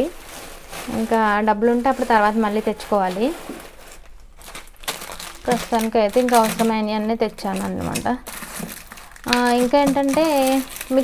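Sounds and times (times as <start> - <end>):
plastic snack packet crinkling: 0.0 - 11.0
woman's voice: 0.9 - 3.4, 5.5 - 8.2, 9.2 - 11.0.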